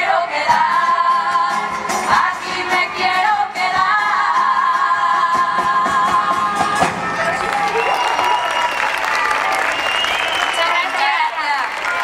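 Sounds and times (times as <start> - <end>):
women singing in unison: 0.0 - 6.9
guitar: 0.0 - 12.0.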